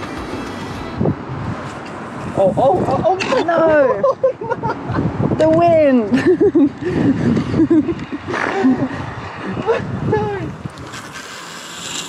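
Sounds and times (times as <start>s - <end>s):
person laughing: 3.8s - 5.1s, 6.1s - 10.0s
steady hiss: 10.6s - 12.0s.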